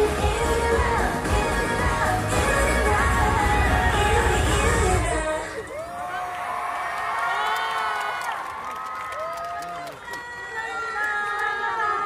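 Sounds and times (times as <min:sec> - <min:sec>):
crowd cheering and screaming: 0:02.4 - 0:12.0.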